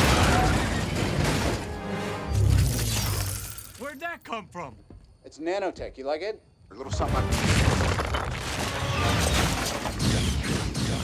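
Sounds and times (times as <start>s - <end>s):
debris crashing and shattering: 0.0s - 1.7s, 7.0s - 10.0s
dramatic score music: 0.5s - 2.8s.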